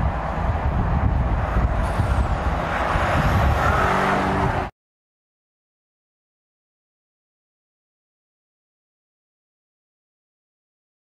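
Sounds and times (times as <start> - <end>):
car driving on road rumble: 0.0 - 4.7.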